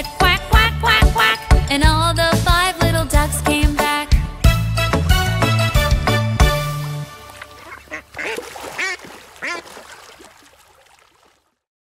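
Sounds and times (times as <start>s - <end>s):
duck quacking: 7.6s - 9.9s.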